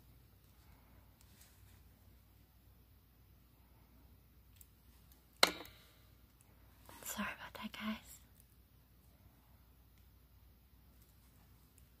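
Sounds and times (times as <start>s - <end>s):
person whispering: 6.9s - 8.4s.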